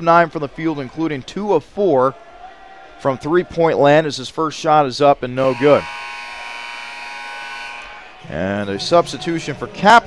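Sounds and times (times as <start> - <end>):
scoreboard horn buzzing: 5.4 - 9.1.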